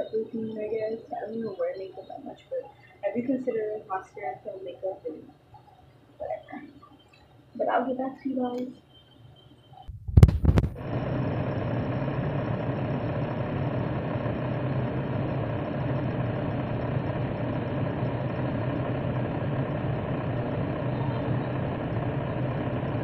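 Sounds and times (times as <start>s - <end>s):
electric fan motor humming: 10.1s - 23.0s.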